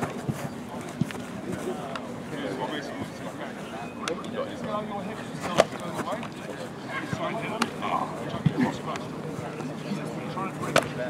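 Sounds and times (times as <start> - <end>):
rugby players calling out: 1.4 - 11.0.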